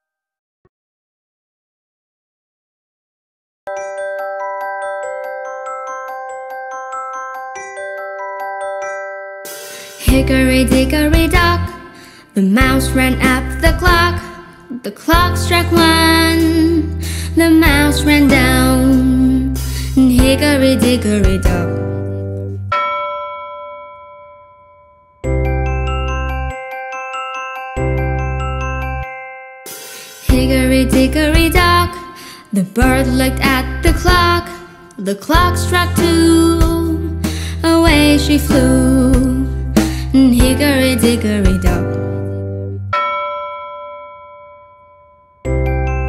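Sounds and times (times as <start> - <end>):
bell chime ringing: 3.7 - 10.1, 22.7 - 30.3, 42.9 - 46.0.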